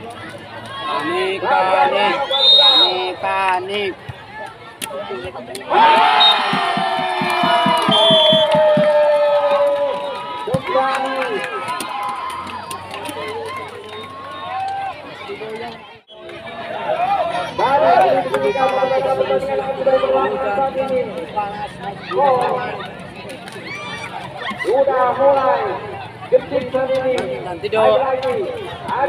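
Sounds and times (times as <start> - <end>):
crowd cheering and shouting: 0.0 - 29.0.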